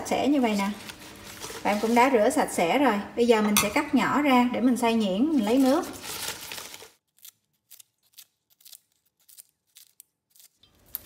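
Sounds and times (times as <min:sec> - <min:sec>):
crisp cuts of leaves: 0:00.1 - 0:02.2, 0:05.2 - 0:11.0.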